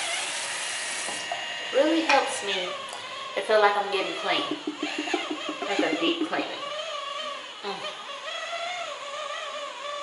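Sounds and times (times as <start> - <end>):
electric cleansing brush whine: 0.0 - 10.0.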